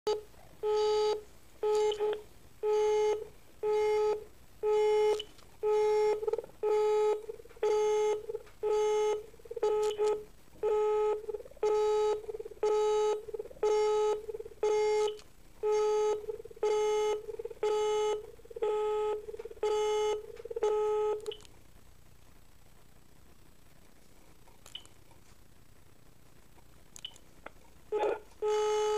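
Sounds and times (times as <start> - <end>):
telephone busy tone beeps: 0.1 - 21.4, 28.0 - 28.9.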